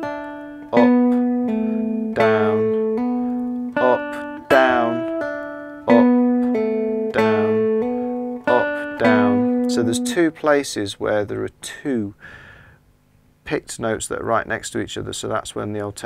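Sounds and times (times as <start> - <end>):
cigar box guitar phrase: 0.0 - 12.2.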